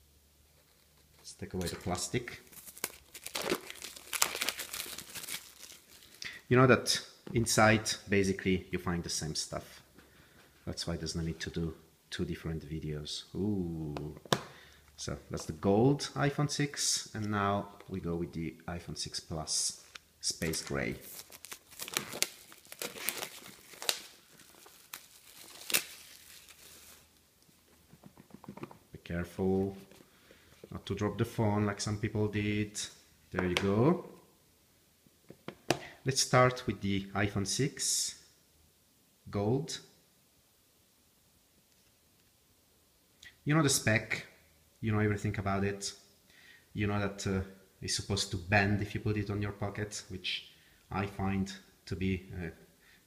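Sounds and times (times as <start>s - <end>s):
plastic wrap crinkling: 0.6s - 6.3s, 19.7s - 28.9s.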